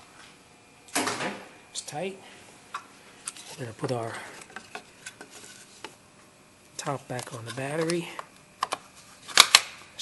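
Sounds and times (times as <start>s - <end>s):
plastic cover clicking into place: 8.6s - 9.7s
plastic cover snapping shut: 8.6s - 9.8s.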